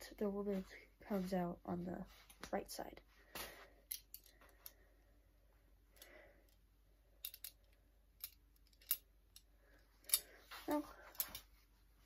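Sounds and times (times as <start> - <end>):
soft rustle: 0.0 - 5.0, 9.6 - 12.0
metal belt buckle clicking: 7.2 - 10.3.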